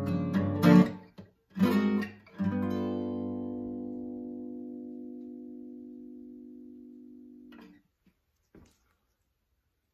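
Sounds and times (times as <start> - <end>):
acoustic guitar chord ringing: 1.6 - 7.8.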